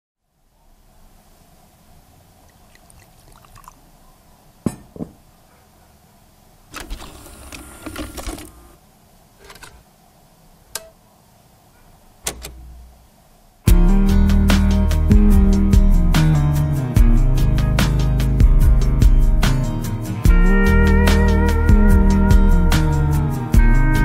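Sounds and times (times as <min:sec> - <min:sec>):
music with guitar: 0:13.7 - 0:24.0.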